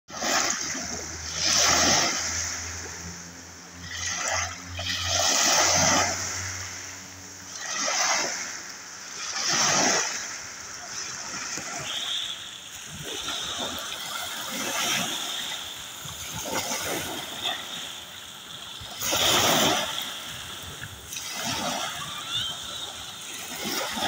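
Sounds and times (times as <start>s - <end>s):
sea waves washing on shore: 0.1s - 24.0s.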